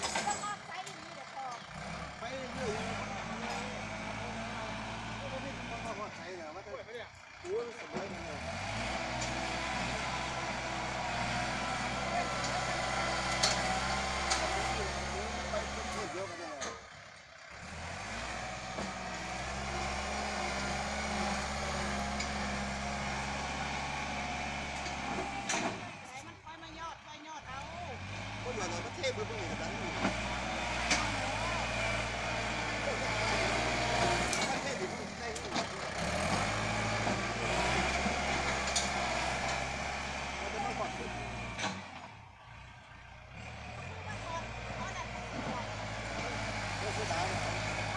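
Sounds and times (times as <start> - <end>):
tractor diesel engine running: 0.0 - 47.9
blade pushing loose soil: 28.6 - 42.0.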